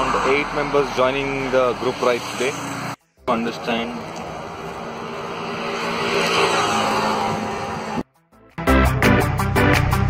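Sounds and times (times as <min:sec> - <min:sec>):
vehicle passing: 0:00.0 - 0:08.0.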